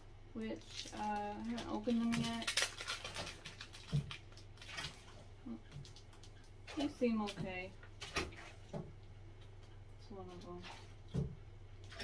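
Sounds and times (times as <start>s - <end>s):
steady low hum: 0.0s - 12.0s
sticker packet rustling: 0.5s - 5.0s.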